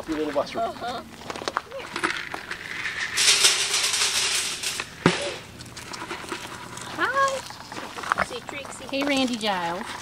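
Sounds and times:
dry feed rattling into wire crate: 2.0 - 6.6.

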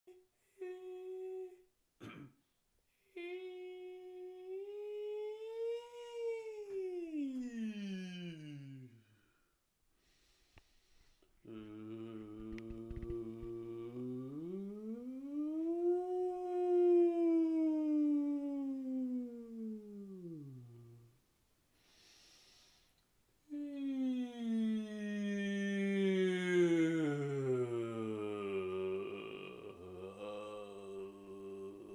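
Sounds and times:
person humming: 0.1 - 2.2, 3.1 - 9.0, 11.4 - 21.2, 23.5 - 31.9.

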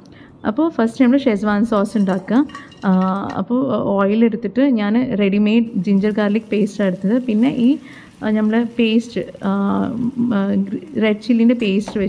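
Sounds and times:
metal spoon scraping frying pan: 1.6 - 3.4
person talking: 4.9 - 12.0.

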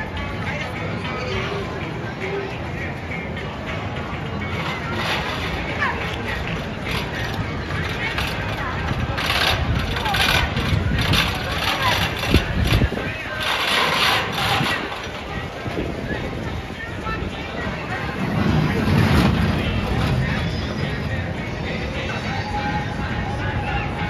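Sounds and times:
people's voices: 0.0 - 24.0
roller coaster wheels rumbling: 0.0 - 24.0.

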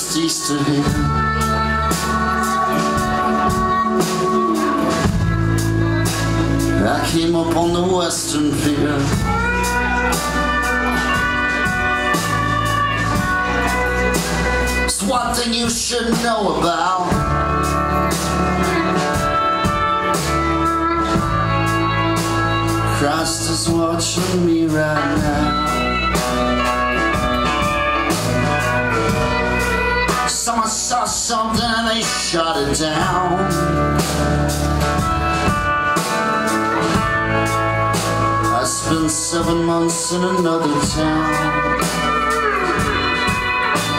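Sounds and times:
acoustic guitar: 0.0 - 43.9
bass: 0.0 - 43.9
drum and cymbal hits: 0.0 - 43.9
held chords: 0.0 - 43.9.

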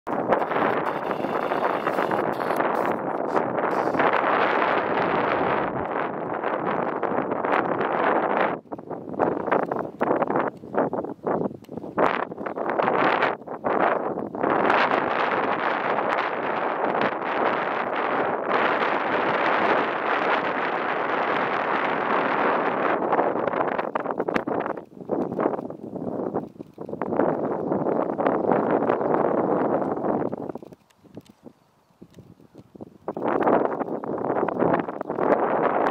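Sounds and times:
wind buffeting microphone: 0.1 - 35.9.

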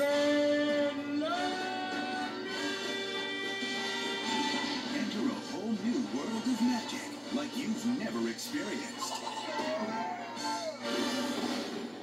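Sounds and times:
trailer music on television: 0.0 - 12.0.

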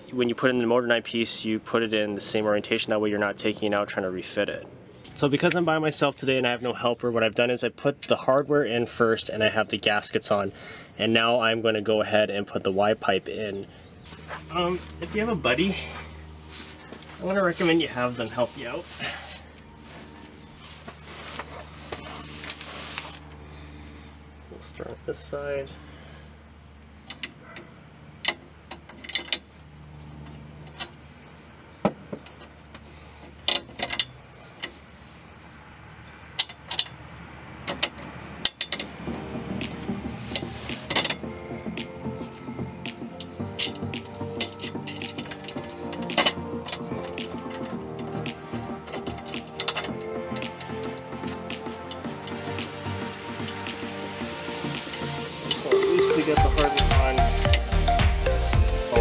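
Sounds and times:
background music with steady beat: 14.2 - 18.8, 38.8 - 59.0
metal clicks and clanks: 27.0 - 29.5, 33.4 - 34.7, 36.0 - 37.0, 37.6 - 39.0, 43.5 - 52.4.

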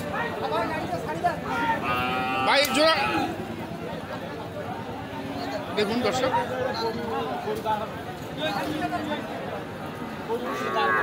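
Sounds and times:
crowd chatter: 0.0 - 11.0
cow mooing: 10.3 - 11.0.

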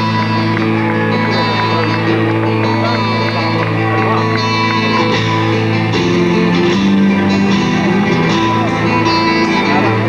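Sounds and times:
guitar: 0.0 - 10.0
live band music: 0.0 - 10.0.

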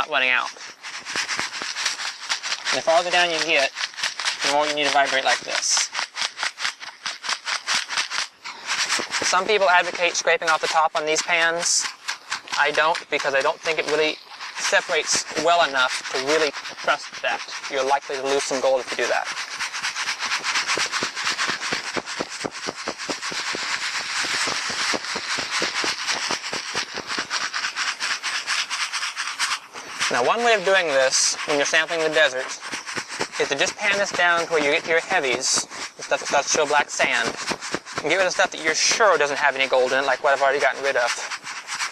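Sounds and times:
sand and gravel rattling in pan: 0.0 - 41.9.

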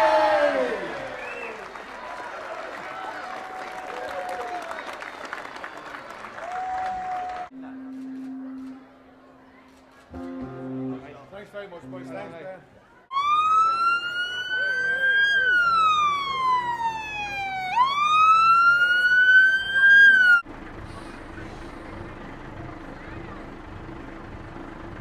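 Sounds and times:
street noise: 0.0 - 25.0
emergency siren wailing: 13.1 - 20.4
low engine hum: 13.8 - 25.0.

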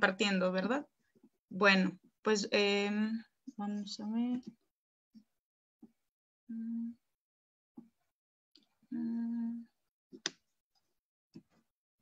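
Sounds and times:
woman humming: 6.5 - 7.2, 8.9 - 9.8.

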